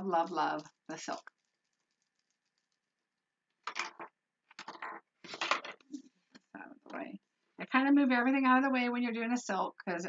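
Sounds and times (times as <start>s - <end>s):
woman's voice: 0.0s - 1.3s, 6.6s - 10.0s.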